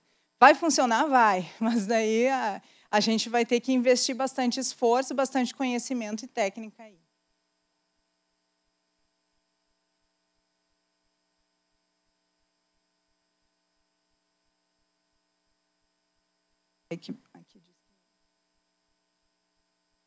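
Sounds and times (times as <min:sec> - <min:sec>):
faint electrical hum: 0:00.0 - 0:20.0.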